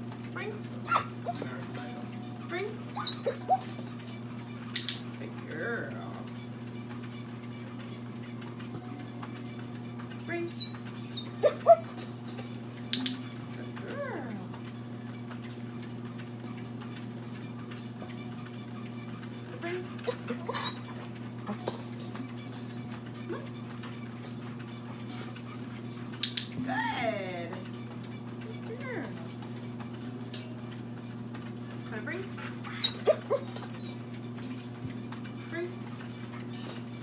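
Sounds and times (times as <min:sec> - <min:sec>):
dogs whining and whimpering: 0:00.8 - 0:04.9, 0:10.4 - 0:14.4, 0:18.2 - 0:22.4, 0:23.2 - 0:23.8, 0:32.2 - 0:34.7.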